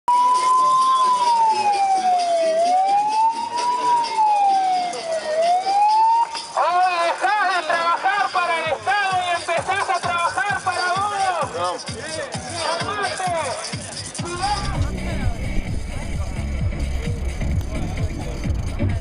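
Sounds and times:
megaphone siren wailing: 0.1s - 6.9s, 14.3s - 15.1s.

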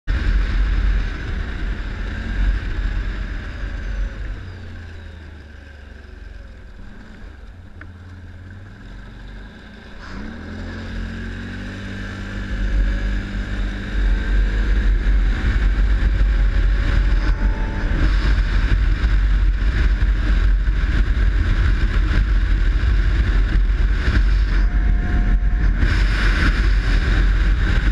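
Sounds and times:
wind rumble on microphone: 0.1s - 5.6s, 6.6s - 27.9s
atv engine revving: 0.1s - 27.9s.

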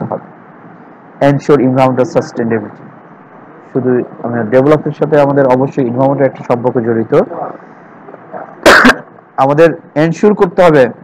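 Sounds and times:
man speaking: 1.2s - 2.8s, 3.6s - 11.0s
man sneezing: 8.6s - 9.1s.

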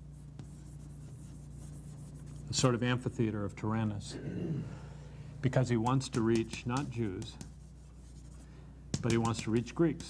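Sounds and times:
chalk scratching on chalkboard: 0.0s - 2.6s, 6.1s - 8.4s
chalk tap: 0.3s - 1.7s, 5.8s - 10.0s.

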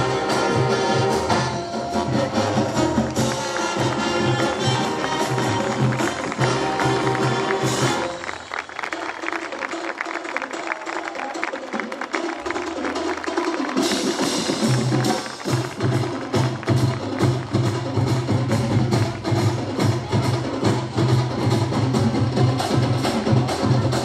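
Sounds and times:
marching band playing: 0.0s - 24.0s.

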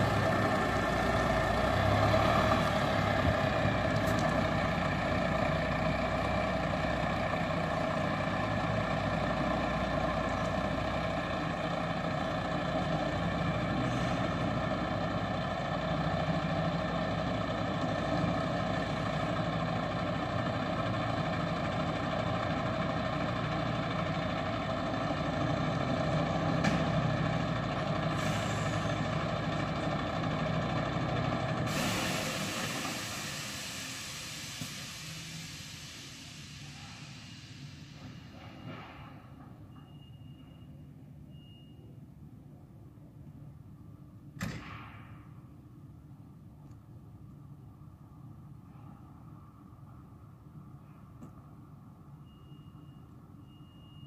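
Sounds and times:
diesel truck engine running: 0.0s - 40.0s
air brakes hissing: 27.8s - 29.6s, 31.6s - 40.8s.

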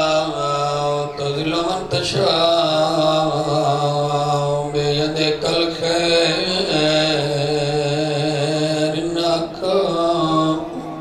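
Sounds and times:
man chanting into microphone: 0.0s - 11.0s.

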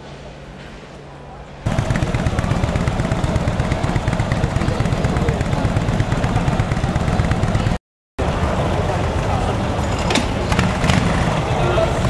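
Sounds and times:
motorcycle engine idling: 1.7s - 12.0s.

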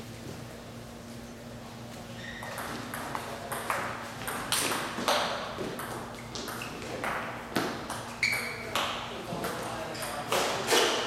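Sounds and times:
ball bounce ringing ping: 2.4s - 9.0s.

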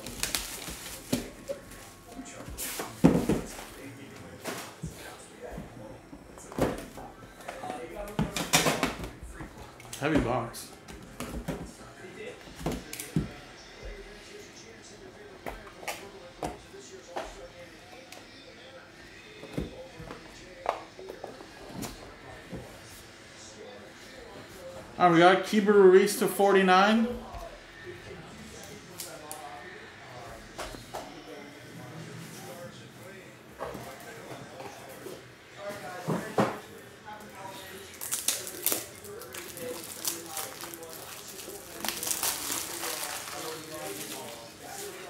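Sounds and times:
plastic wrap crinkling and tearing: 0.0s - 1.4s, 37.8s - 45.0s.

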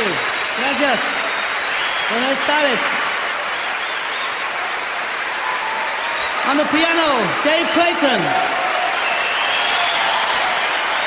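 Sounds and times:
audience applauding: 0.0s - 11.0s.

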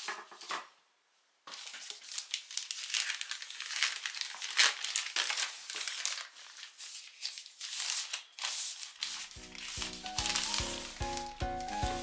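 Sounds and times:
plastic bag crinkling: 1.5s - 12.0s
scissors cutting plastic: 9.0s - 12.0s.

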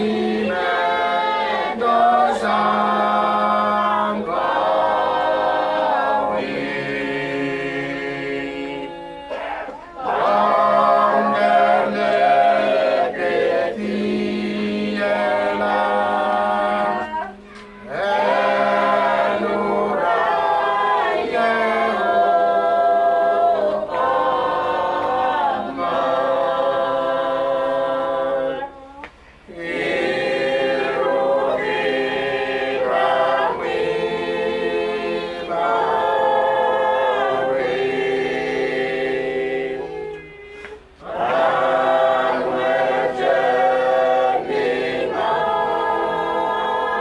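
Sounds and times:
congregation singing a hymn: 0.0s - 47.0s.

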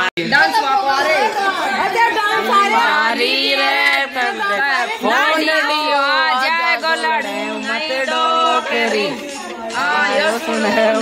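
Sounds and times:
women's voices overlapping: 0.0s - 11.0s.

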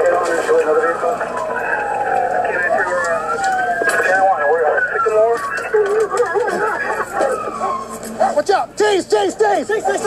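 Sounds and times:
police sirens wailing: 0.0s - 10.0s.

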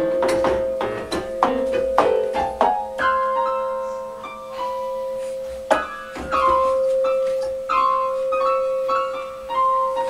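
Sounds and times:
piano music: 0.0s - 10.0s.

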